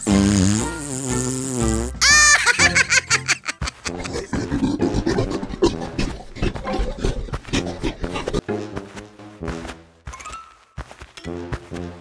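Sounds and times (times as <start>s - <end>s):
wavering comic sound effect: 2.0s - 4.3s.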